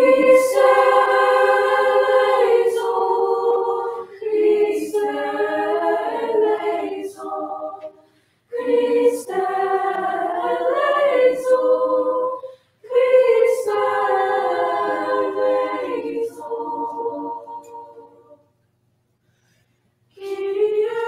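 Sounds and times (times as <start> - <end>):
choir singing sustained chords: 0.0 - 18.5, 20.2 - 21.0.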